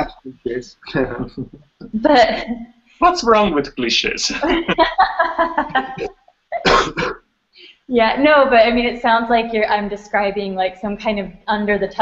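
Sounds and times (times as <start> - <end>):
men laughing: 4.3 - 6.2
short cough: 5.9 - 7.2.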